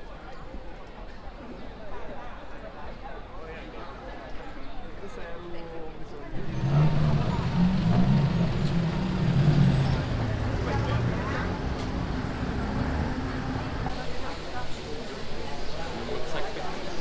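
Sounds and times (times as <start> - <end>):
vehicle engines humming: 6.3 - 15.5.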